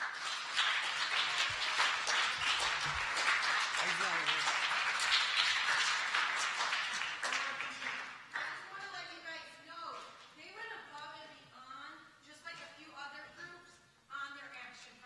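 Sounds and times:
audience applauding: 0.0s - 8.6s.

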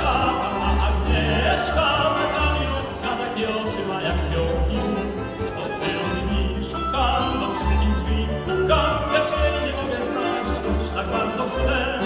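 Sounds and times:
double bass low notes: 0.0s - 12.0s
tango quartet playing: 0.0s - 12.0s.

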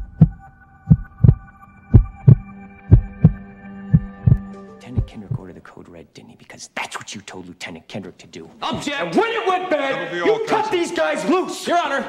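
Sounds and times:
heartbeat thumps: 0.0s - 5.5s.

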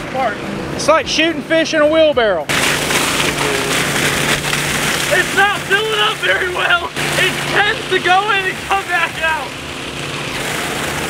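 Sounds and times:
water gushing from a hose: 2.5s - 11.0s
water splashing into a tub: 2.5s - 11.0s.

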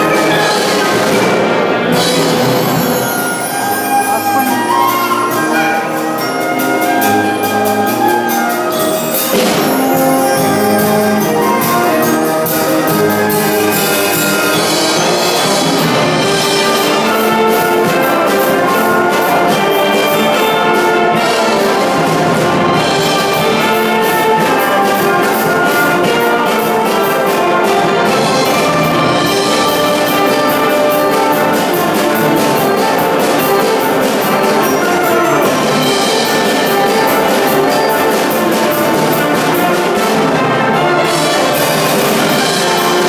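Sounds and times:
brass band playing: 0.0s - 43.0s.

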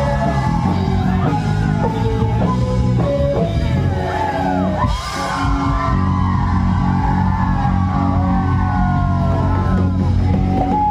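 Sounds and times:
live band playing folk song: 0.0s - 5.8s, 9.4s - 10.9s.

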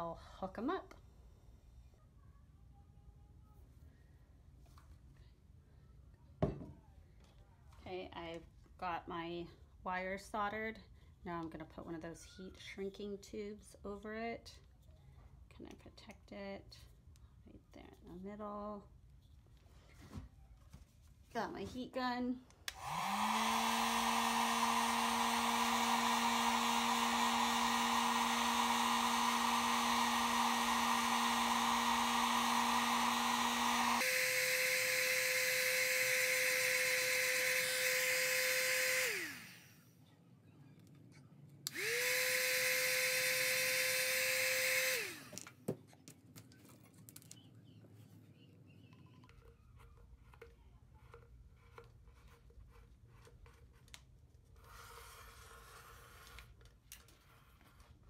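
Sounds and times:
heat gun fan whine: 22.6s - 39.9s, 41.6s - 45.6s.

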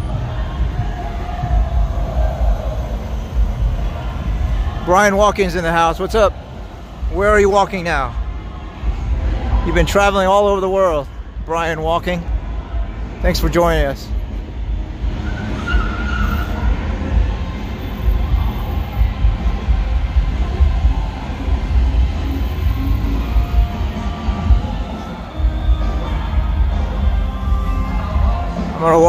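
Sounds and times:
heavy low rumble: 0.0s - 15.2s
cars idling and moving: 0.0s - 29.0s
music playing in background: 0.0s - 29.0s.

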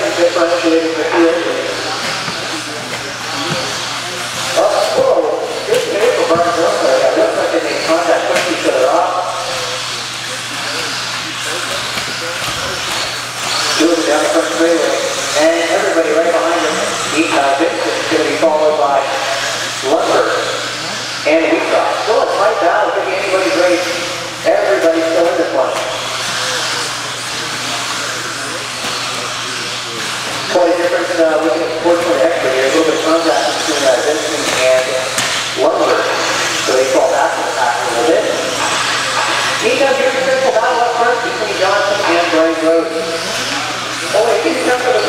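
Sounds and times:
electric toy cars whining: 0.0s - 22.6s, 23.2s - 45.0s
voices talking: 0.0s - 45.0s.

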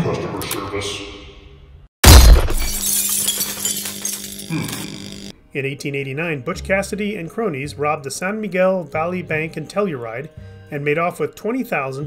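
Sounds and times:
gunshot: 2.0s - 2.8s
glass shattering: 2.0s - 4.5s
debris tinkling down: 2.2s - 4.6s.

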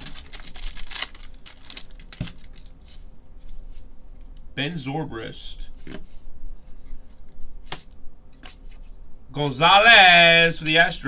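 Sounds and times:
foil wrapper crackling: 0.0s - 2.8s.

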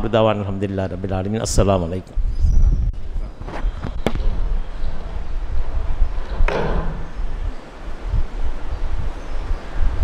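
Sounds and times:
microphone handling rumble and knocks: 2.3s - 8.3s.

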